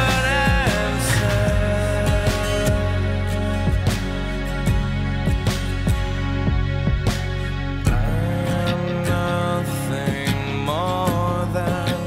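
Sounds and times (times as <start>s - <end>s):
slow rock song with drums: 0.0s - 12.0s.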